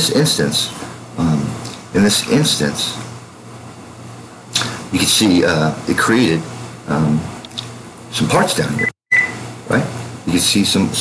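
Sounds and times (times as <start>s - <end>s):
man speaking: 0.0s - 3.0s, 4.6s - 7.4s, 8.1s - 8.9s, 9.7s - 11.0s
low electrical hum: 0.0s - 11.0s.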